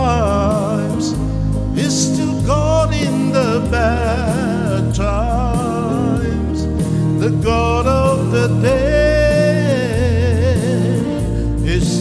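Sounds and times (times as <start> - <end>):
man singing gospel song: 0.0 - 12.0
recorded backing track: 0.0 - 12.0.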